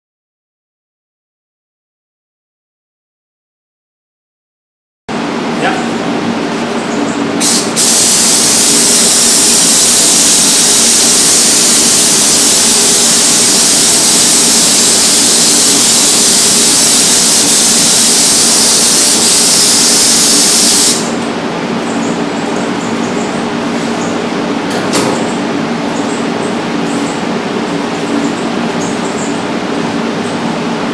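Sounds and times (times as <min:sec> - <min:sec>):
ventilation drone: 0:05.1 - 0:30.9
spray gun hissing: 0:07.4 - 0:21.1.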